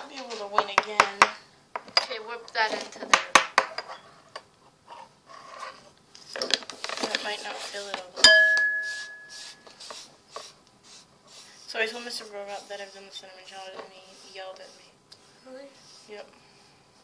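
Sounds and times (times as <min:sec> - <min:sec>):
metal spoons clinking on a dish: 0:08.2 - 0:09.3.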